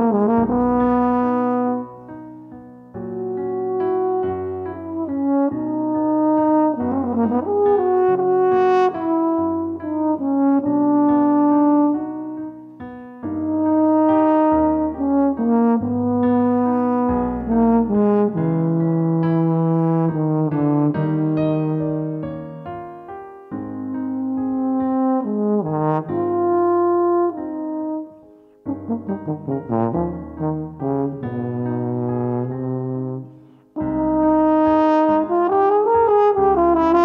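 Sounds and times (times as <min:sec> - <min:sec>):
french horn melody: 0:00.0 - 0:37.0
piano accompaniment: 0:00.0 - 0:37.0.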